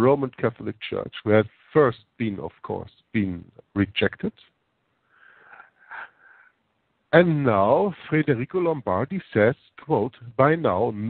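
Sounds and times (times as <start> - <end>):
man's faint breath: 5.0 - 6.6.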